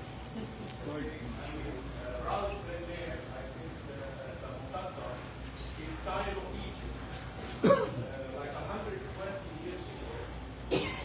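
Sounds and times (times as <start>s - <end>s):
chatter of people talking: 0.0s - 11.0s
loud cough: 7.6s - 8.1s, 10.7s - 11.0s.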